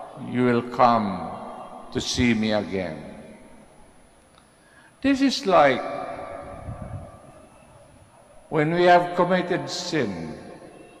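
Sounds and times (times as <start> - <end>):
amplified voice reverberating: 0.0 - 3.5, 5.0 - 7.5, 8.5 - 11.0.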